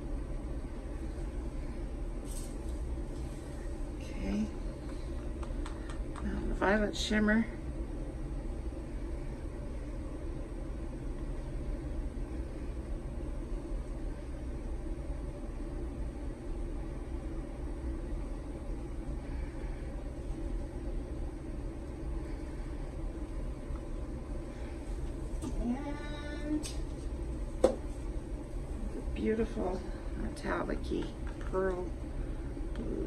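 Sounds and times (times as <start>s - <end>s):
steady low background noise: 0.0s - 33.0s.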